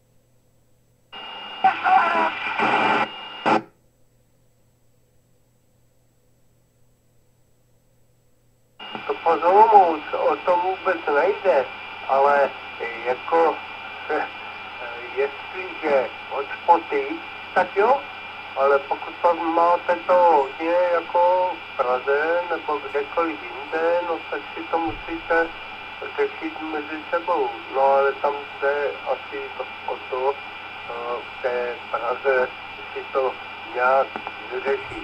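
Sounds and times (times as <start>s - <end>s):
radio hiss: 1.2s - 3.6s, 8.8s - 35.0s
voice through radio speaker: 1.6s - 3.0s, 8.9s - 35.0s.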